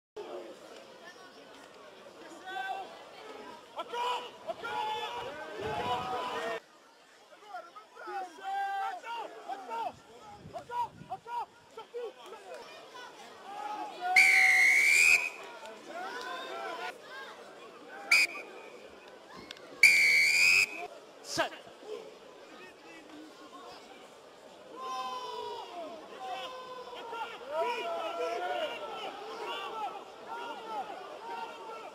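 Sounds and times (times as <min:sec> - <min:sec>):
indistinct voices chattering: 0:12.8 - 0:31.9
referee's whistle blasts: 0:14.2 - 0:15.4, 0:18.1 - 0:18.5, 0:19.8 - 0:20.9.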